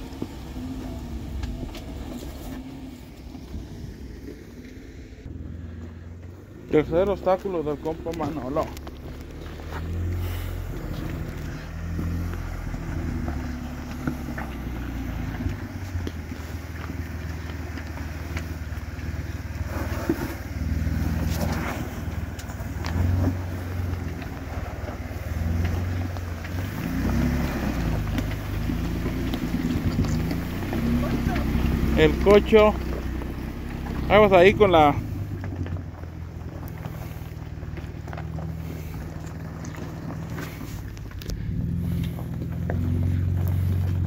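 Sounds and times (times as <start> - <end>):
off-road engine revving: 0.0 - 44.0.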